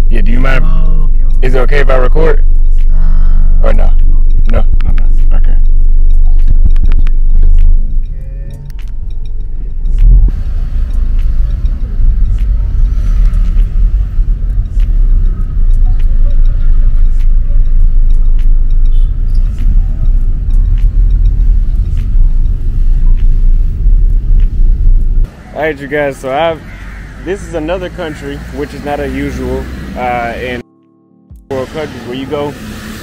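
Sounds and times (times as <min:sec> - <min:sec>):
car rumble inside cabin: 0:00.1 - 0:25.3.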